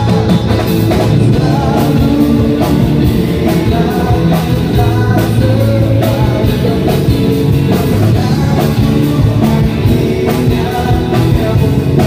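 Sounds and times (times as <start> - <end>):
bass guitar: 0.0 - 12.0
drum kit: 0.0 - 12.0
electric guitar: 0.0 - 12.0
man singing: 0.0 - 12.0.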